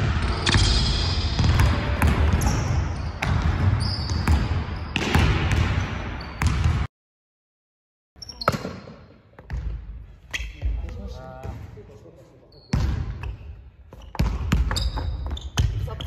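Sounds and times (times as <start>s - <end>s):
basketball bouncing on hardwood floor: 1.4s - 6.9s, 14.1s - 15.9s.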